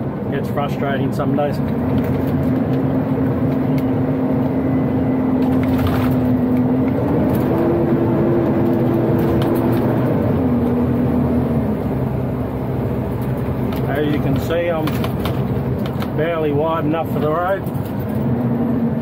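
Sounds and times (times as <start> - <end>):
truck diesel engine whine: 0.0 - 19.0.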